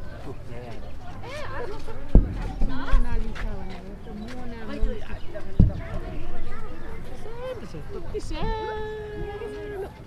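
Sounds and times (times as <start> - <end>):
people talking in background: 0.0 - 10.0
low thump: 2.0 - 3.6, 5.4 - 6.4.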